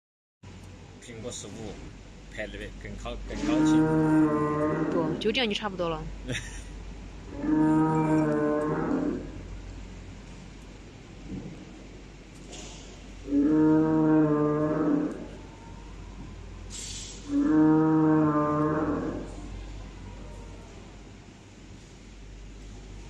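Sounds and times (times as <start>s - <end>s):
dinosaur bellowing calls: 3.3s - 5.2s, 7.3s - 9.4s, 13.2s - 16.0s, 16.7s - 19.6s.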